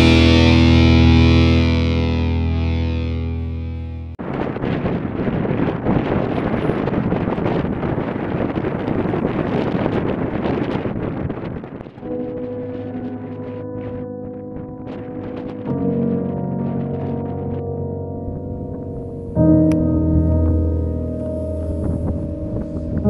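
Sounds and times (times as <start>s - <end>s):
distorted electric guitar chord: 0.0s - 4.2s, 12.0s - 23.0s
rough rushing noise: 20.1s - 23.0s.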